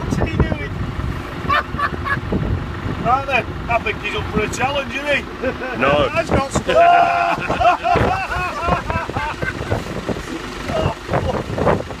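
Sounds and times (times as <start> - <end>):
people talking: 0.0 - 0.7, 3.0 - 9.4, 10.3 - 11.6
vehicle engine driving through mud: 0.0 - 12.0
people laughing: 1.4 - 2.3, 5.3 - 9.9.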